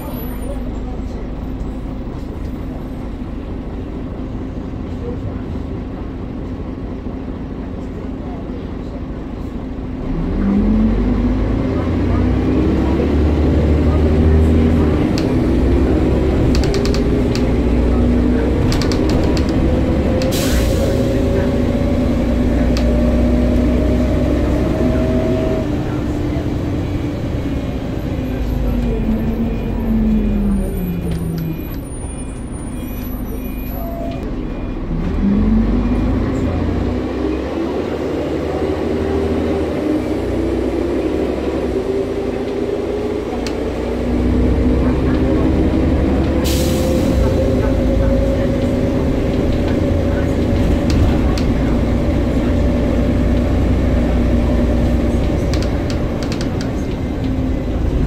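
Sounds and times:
bus engine rumble: 0:00.0 - 0:58.0.

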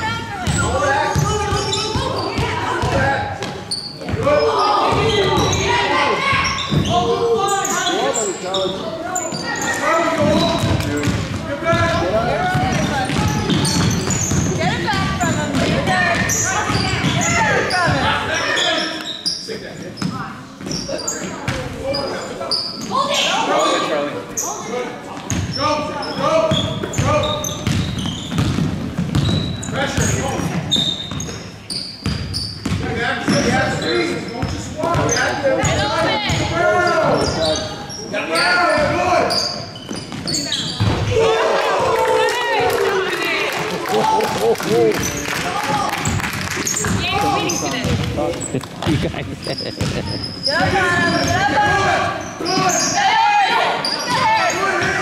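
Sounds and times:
shouts and chatter: 0:00.0 - 0:19.1, 0:20.8 - 0:25.0, 0:40.4 - 0:48.2, 0:49.6 - 0:55.0
basketball bouncing on gym floor: 0:00.3 - 0:05.6, 0:10.1 - 0:18.1, 0:26.5 - 0:31.4, 0:32.0 - 0:33.5, 0:46.0 - 0:48.4, 0:49.5 - 0:51.9.

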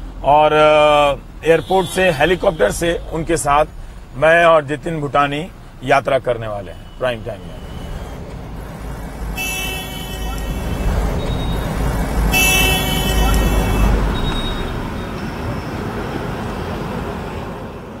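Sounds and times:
road and engine rumble: 0:00.0 - 0:18.0
shrill car horn toots: 0:01.4 - 0:03.9, 0:06.6 - 0:08.3, 0:09.3 - 0:15.2.

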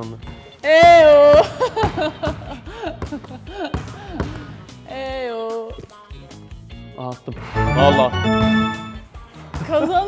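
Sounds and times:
background music: 0:00.0 - 0:10.0
basketball bouncing on hardwood: 0:00.2 - 0:04.4.

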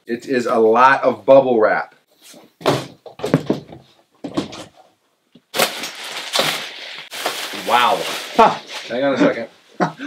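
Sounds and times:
packaging rustling: 0:05.5 - 0:09.2
cardboard box scraping through bubble wrap: 0:05.6 - 0:09.1.

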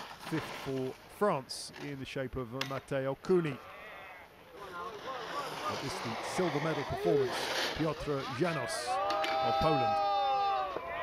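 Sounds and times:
snowboard sliding on snow: 0:00.0 - 0:01.6, 0:04.5 - 0:11.0.

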